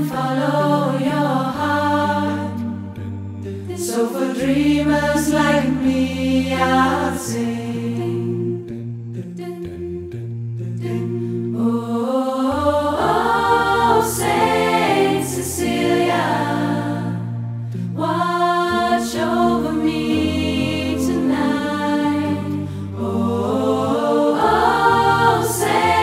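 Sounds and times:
a cappella choir singing: 0.0 - 26.0.

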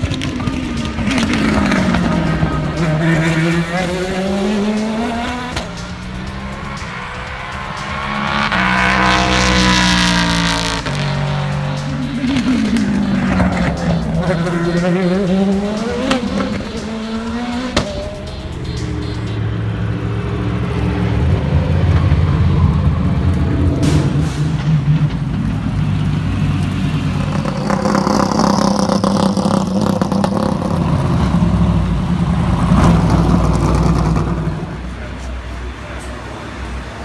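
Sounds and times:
race car engine revving: 0.0 - 37.0.

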